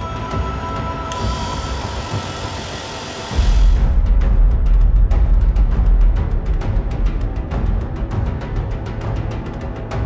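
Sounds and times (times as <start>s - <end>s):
bristle disc brushing hiss: 0.9s - 4.0s.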